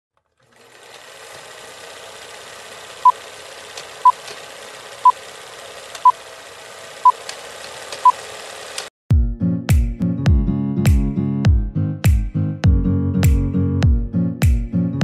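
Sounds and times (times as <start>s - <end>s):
film projector clatter and crackle: 0.2s - 8.9s.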